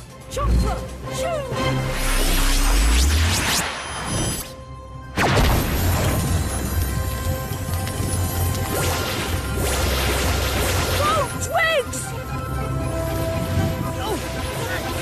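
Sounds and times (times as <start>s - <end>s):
music: 0.0s - 15.0s.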